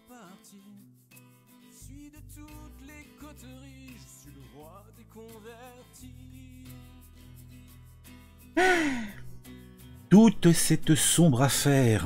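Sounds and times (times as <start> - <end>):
person sighing: 8.6 - 9.4.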